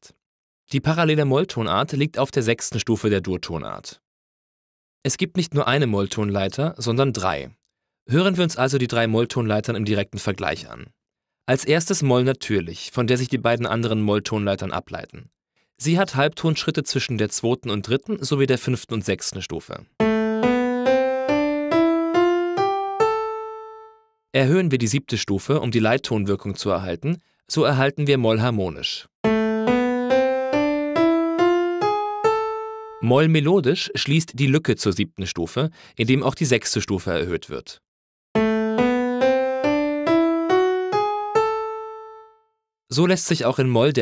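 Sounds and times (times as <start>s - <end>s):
piano playing a minor scale: 20.0s - 24.1s, 29.2s - 33.0s, 38.4s - 42.4s.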